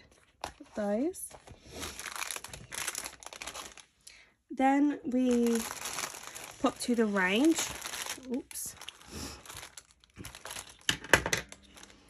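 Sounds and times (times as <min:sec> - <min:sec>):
plastic packaging crinkling: 0:00.0 - 0:04.0, 0:05.1 - 0:12.0.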